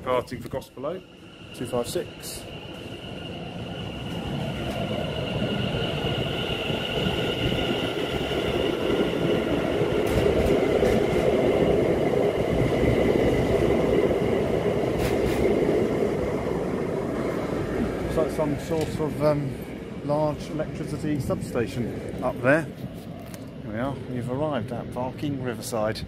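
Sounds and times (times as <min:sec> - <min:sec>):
electric train motors whining: 0:00.0 - 0:23.4
train wheels rumbling: 0:00.0 - 0:26.0.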